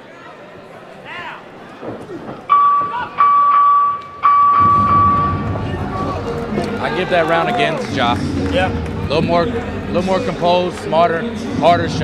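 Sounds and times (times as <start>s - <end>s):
electronic horn blasts: 2.5s - 6.4s.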